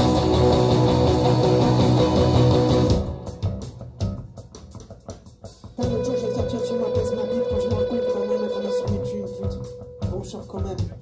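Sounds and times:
bass line: 0.0s - 4.6s, 5.8s - 11.0s
electric guitar: 0.0s - 11.0s.

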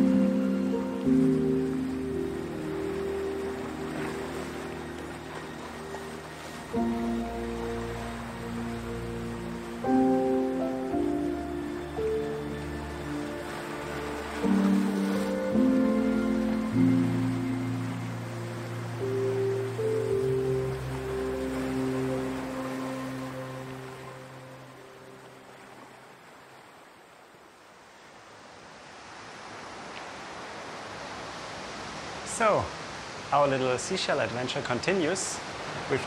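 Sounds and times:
calm instrumental music: 0.0s - 25.9s
surf rushing: 0.0s - 27.0s, 28.7s - 36.0s.

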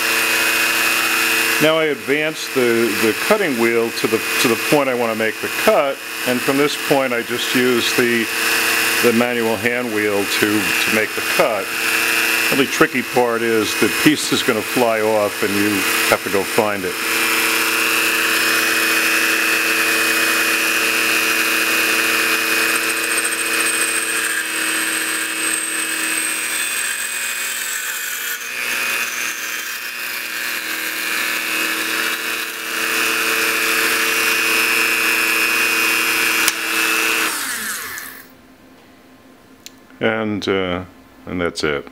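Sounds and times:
lathe motor running: 0.0s - 38.3s
rotary tool grinding steel rod: 0.0s - 38.3s.

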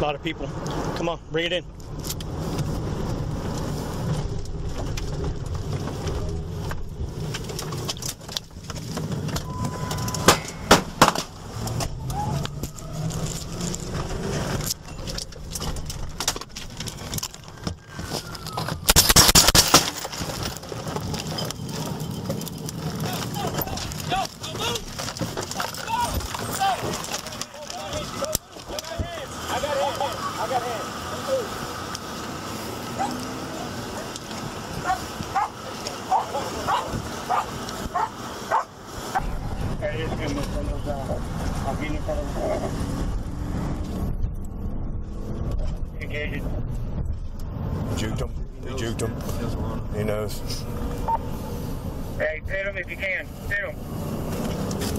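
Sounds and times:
car engine and road noise: 0.0s - 54.9s
gunshots: 18.9s - 20.0s.

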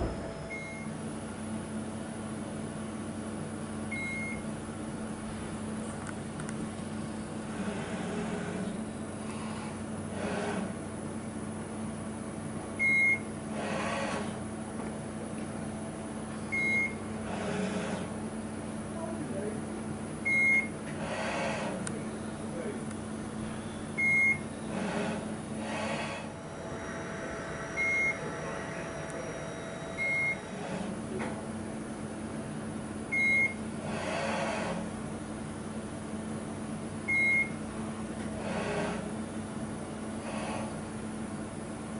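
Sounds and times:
machine whirring: 0.0s - 1.0s, 23.3s - 31.8s
steady low hum: 0.0s - 41.9s
short high beeps: 27.8s - 28.3s, 29.0s - 30.4s.

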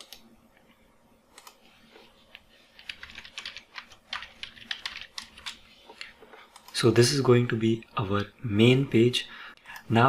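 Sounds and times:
computer keyboard typing: 2.3s - 6.8s.

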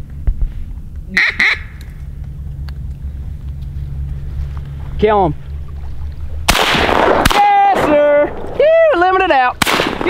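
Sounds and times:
steady low rumble: 0.0s - 10.0s
duck quacks: 1.1s - 1.8s.

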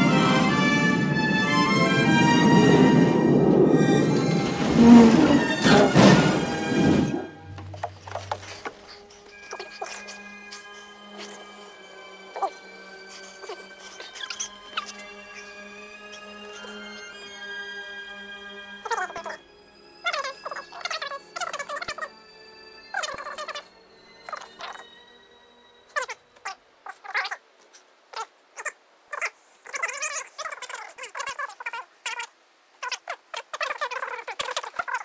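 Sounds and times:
film score held notes: 0.0s - 29.8s
sped-up squeaky dialogue: 12.3s - 15.2s, 18.8s - 19.4s, 20.0s - 25.0s, 25.9s - 27.4s, 28.1s - 35.0s.

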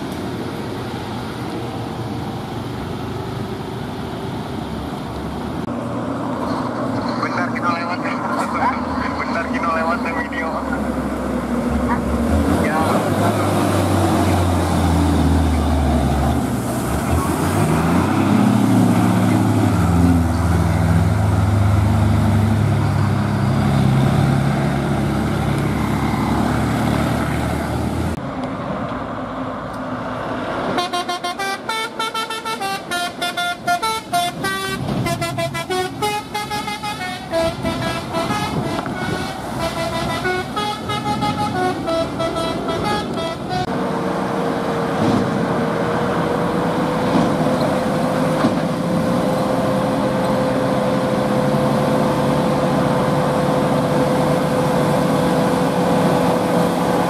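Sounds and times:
diesel truck passing: 0.0s - 57.0s
multi-tone musical truck horn: 30.8s - 43.7s.

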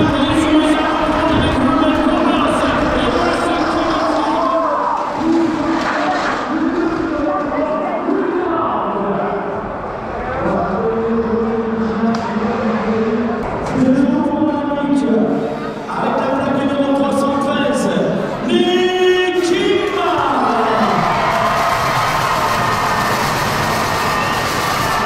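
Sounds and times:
indistinct voice over loudspeaker: 0.0s - 21.1s
hall background noise: 0.0s - 25.0s.

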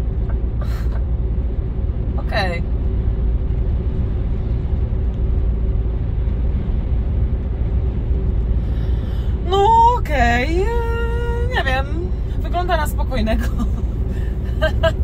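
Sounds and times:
faint steady hum: 0.0s - 15.0s
lorry engine and road rumble: 0.0s - 15.0s.

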